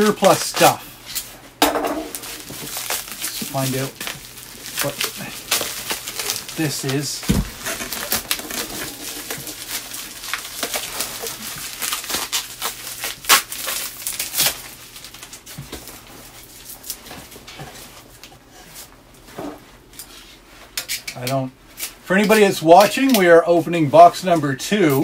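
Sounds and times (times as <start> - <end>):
plastic wrap crinkling: 2.0 - 18.3.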